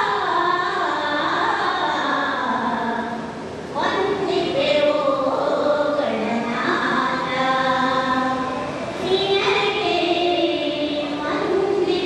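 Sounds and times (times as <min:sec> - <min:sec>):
women singing in unison: 0:00.0 - 0:12.0.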